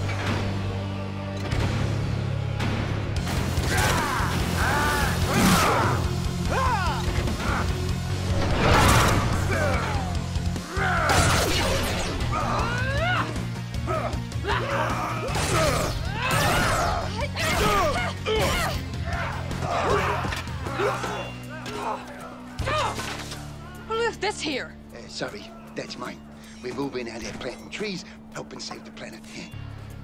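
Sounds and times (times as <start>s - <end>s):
dramatic music: 0.0s - 30.0s.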